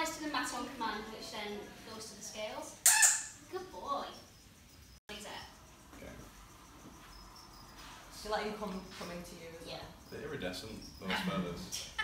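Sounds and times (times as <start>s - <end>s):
faint high-pitched chirps: 1.0s - 11.1s.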